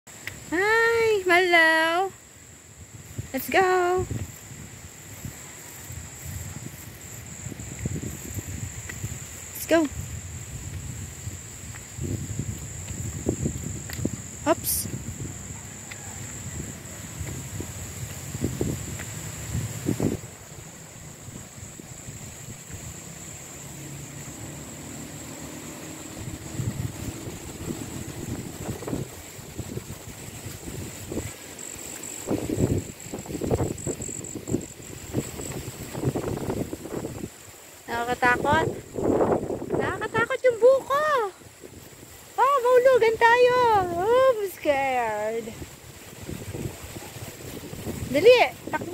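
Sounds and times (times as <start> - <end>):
high-pitched insect trill: 0.1 - 48.9
wind rumbling on microphone: 0.1 - 48.9.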